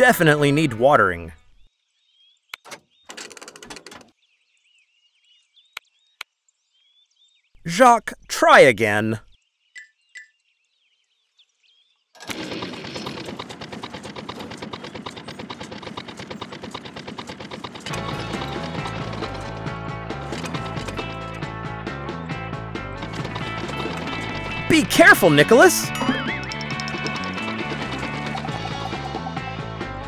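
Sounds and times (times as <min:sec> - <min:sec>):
cartoon tractor engine rattle: 0:02.6 - 0:04.1, 0:12.2 - 0:21.5, 0:22.7 - 0:29.6
background music with bass line: 0:17.9 - 0:30.0.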